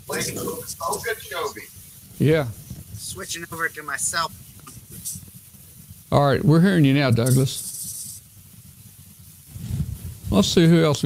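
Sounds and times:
short hiss: 0.1 - 6.0, 6.9 - 10.4.

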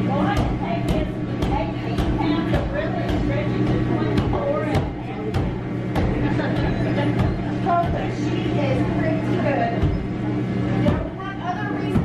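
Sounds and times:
indoor crowd chatter: 0.0 - 12.0
steady low hum: 0.0 - 12.0.

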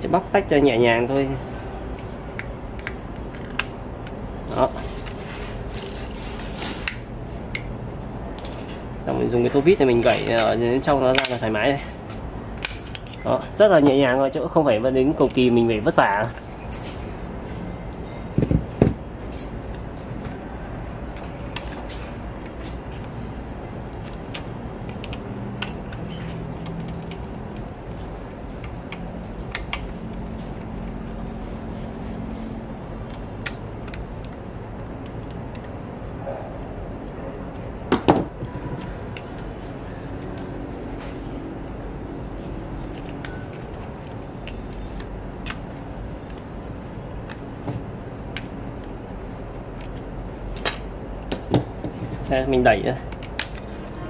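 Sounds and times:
low background noise: 0.0 - 54.0.

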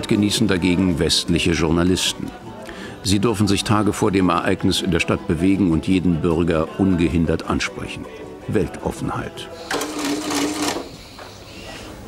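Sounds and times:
receipt printer buzzing: 9.6 - 11.0.

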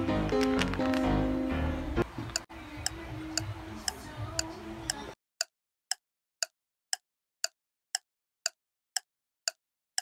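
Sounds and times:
clock ticking: 2.3 - 10.0.

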